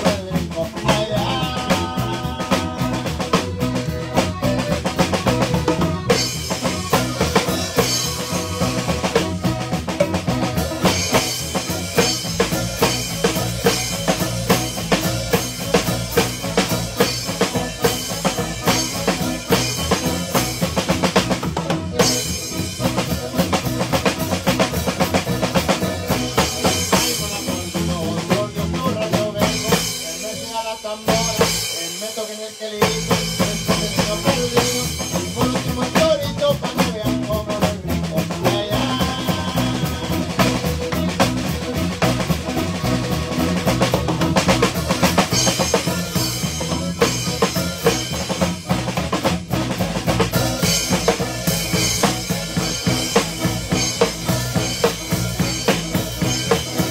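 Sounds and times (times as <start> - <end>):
bass drum and snare: 0.0 - 56.9
live band playing: 0.0 - 56.9.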